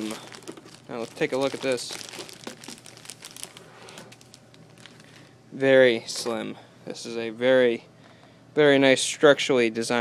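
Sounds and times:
plastic packaging crinkling: 0.0 - 5.3.

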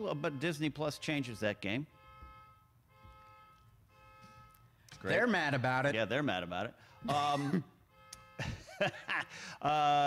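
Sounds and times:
pulsing electronic horn tone: 0.0 - 8.9.

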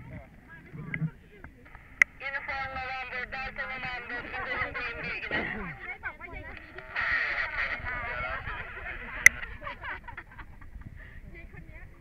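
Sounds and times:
garbled voice over two-way radio: 1.0 - 9.4.

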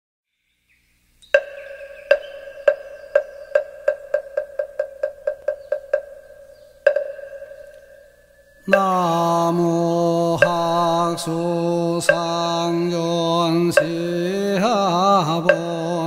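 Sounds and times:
wooden fish knocks: 6.9 - 7.8.

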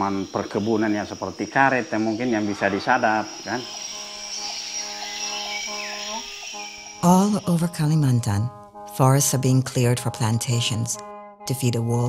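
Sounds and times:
high-pitched insect chorus: 0.0 - 8.5
soft music of held notes: 0.0 - 12.0.

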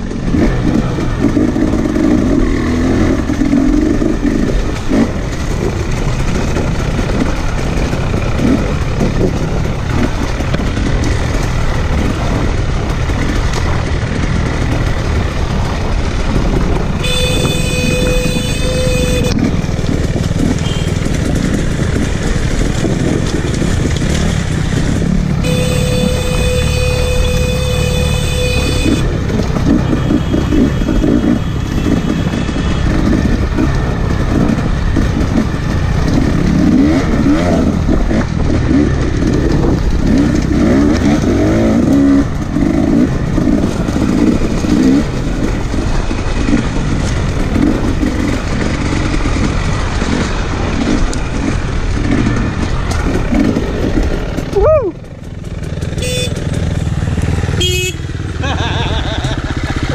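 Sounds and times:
dirt bike engine revving: 0.2 - 54.5, 55.3 - 59.9.

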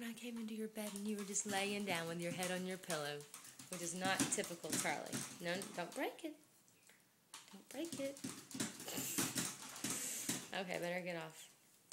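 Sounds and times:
wooden chair knocking and rattling: 1.0 - 5.9, 7.9 - 10.5.

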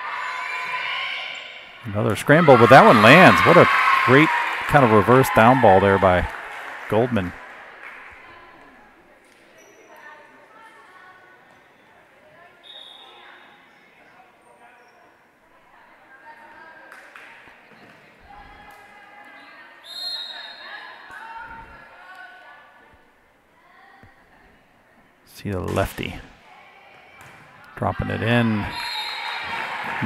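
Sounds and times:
echoing voices: 0.0 - 9.2
whistle blasts: 12.6 - 13.4, 19.8 - 20.7, 28.7 - 29.6.

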